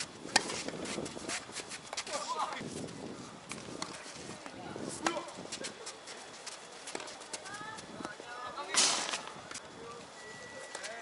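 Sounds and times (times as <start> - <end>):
tennis ball hitting rackets: 0.0 - 1.0, 5.0 - 5.3
shoes squeaking: 0.0 - 3.0, 3.7 - 7.9, 9.0 - 11.0.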